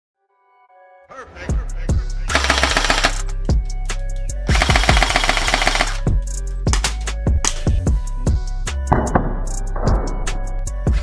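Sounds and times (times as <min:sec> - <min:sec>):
music with deep bass: 0:01.4 - 0:11.0
automatic gunfire: 0:02.3 - 0:03.2, 0:04.5 - 0:06.0.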